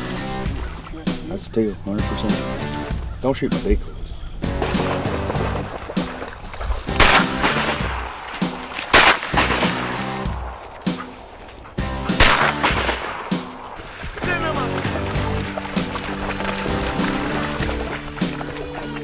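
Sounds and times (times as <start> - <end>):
background music: 0.0 - 19.0
shotgun blasts with echo: 6.9 - 11.0, 12.1 - 13.7.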